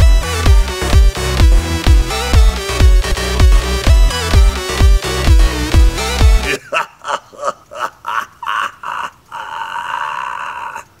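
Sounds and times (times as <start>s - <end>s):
man's non-word vocal noises: 6.4s - 11.0s.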